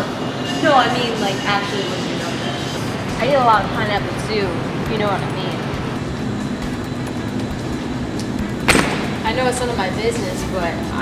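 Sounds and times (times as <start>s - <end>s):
refrigerated cases humming: 0.0s - 11.0s.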